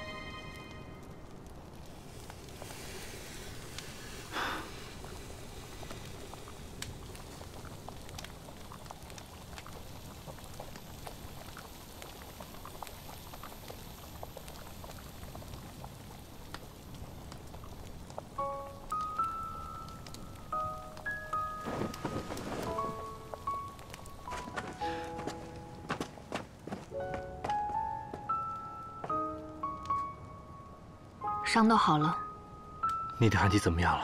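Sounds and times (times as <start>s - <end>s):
slow melody of held notes: 0.0s - 1.6s, 18.3s - 26.3s, 26.9s - 34.0s
steady hiss with crackles: 0.0s - 34.0s.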